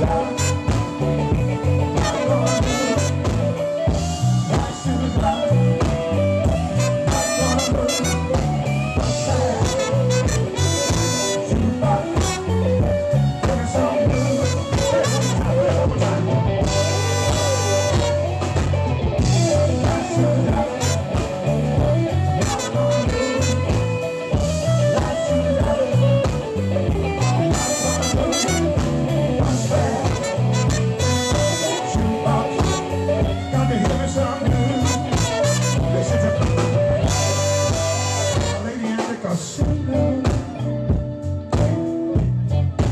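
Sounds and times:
horn section: 0.0 - 5.6, 6.6 - 13.1, 13.8 - 25.9, 27.1 - 39.2
live blues band: 0.0 - 42.9.

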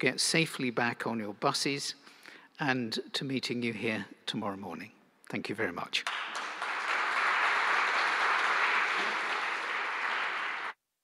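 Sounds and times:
audience applauding: 6.0 - 10.8.

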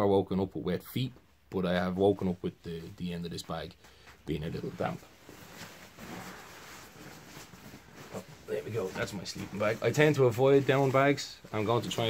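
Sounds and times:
sleeping bag fabric rustling: 4.4 - 12.0.

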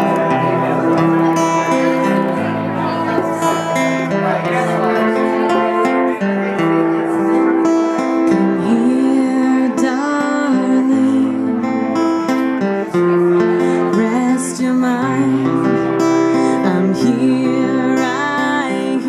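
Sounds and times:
acoustic guitar music: 0.0 - 19.0
woman singing: 8.3 - 12.0, 13.7 - 19.0.

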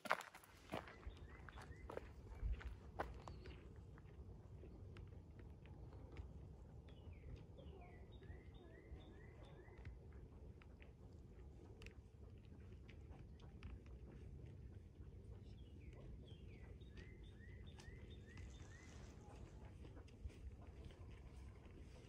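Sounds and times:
songbird singing: 0.6 - 3.8, 4.6 - 11.4, 12.4 - 22.0
low steady rumble: 1.0 - 22.0.

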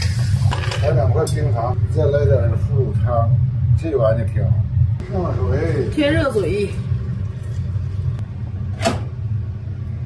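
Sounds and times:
low kitchen hum: 0.0 - 10.0.

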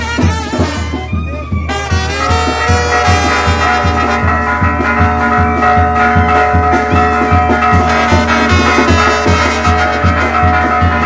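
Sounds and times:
bass drum beat: 0.0 - 11.0
brass band playing dance music: 0.0 - 11.0.

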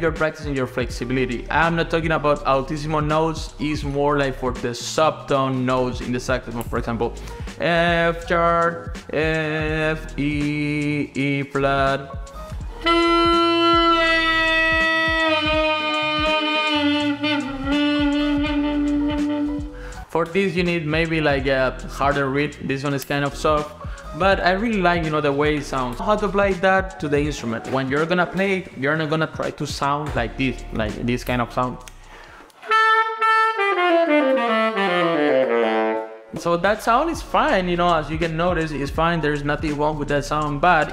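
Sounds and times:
saxophone mouthpiece tone bending: 11.7 - 20.2, 31.7 - 36.4.

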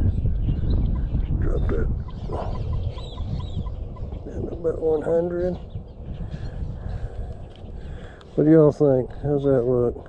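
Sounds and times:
high arched bird chirps: 0.0 - 4.4.

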